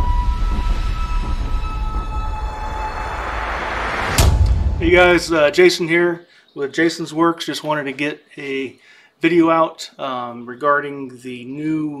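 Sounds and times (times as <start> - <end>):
deep heavy rumble: 0.0 - 5.5.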